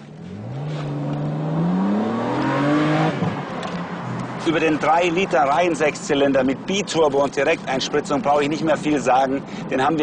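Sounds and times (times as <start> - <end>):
car engine accelerating: 0.0 - 5.4.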